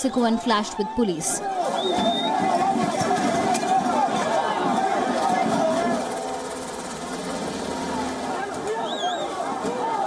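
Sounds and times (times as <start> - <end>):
helicopter rotor drone: 4.4 - 9.2.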